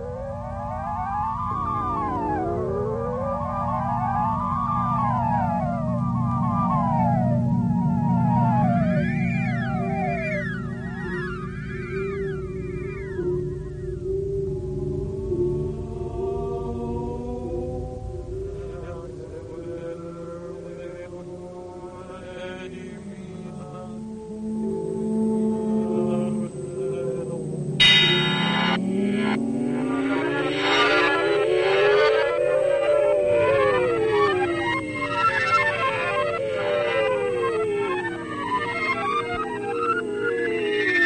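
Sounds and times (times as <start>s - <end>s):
low electronic drone: 0.0s - 20.5s, 22.8s - 41.0s
sliding electronic tones: 26.5s - 41.0s.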